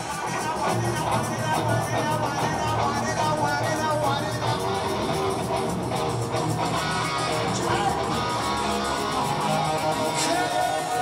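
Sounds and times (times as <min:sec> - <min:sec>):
hard rock band playing live: 0:00.0 - 0:11.0.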